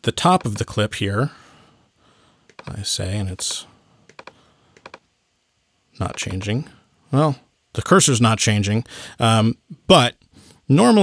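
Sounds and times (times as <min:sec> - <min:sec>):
computer clicks: 0:00.4 - 0:00.7, 0:02.5 - 0:02.8, 0:03.4 - 0:05.1, 0:06.1 - 0:06.5.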